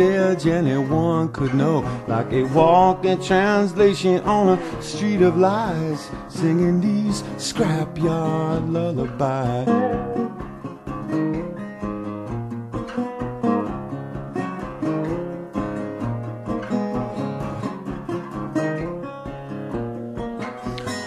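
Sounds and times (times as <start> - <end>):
acoustic guitar plucked and strummed: 0.0 - 21.0.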